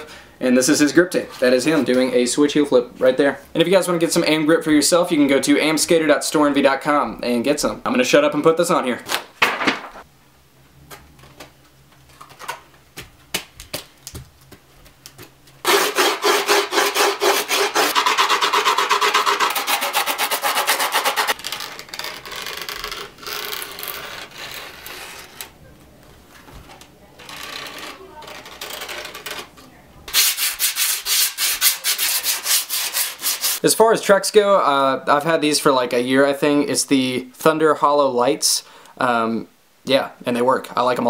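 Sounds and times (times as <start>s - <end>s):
scraping grip tape: 15.0s - 25.6s, 27.2s - 33.6s.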